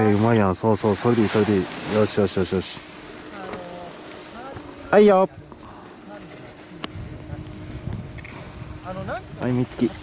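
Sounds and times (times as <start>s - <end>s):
skis carving over snow: 0.0s - 6.8s.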